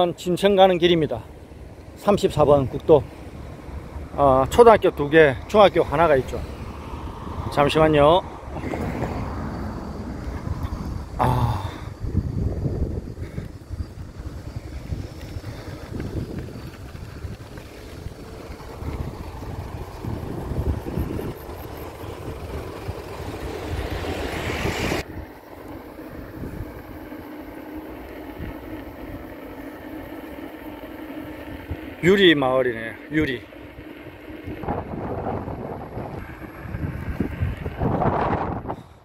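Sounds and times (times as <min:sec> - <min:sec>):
moving vehicle running: 0:00.0 - 0:39.0
wind noise on microphone: 0:06.7 - 0:25.0, 0:26.2 - 0:26.9, 0:34.4 - 0:39.0.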